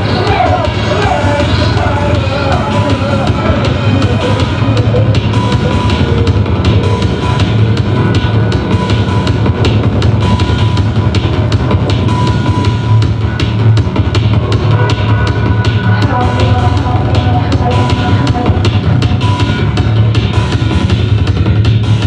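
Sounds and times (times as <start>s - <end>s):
electronic techno music: 0.0s - 22.0s.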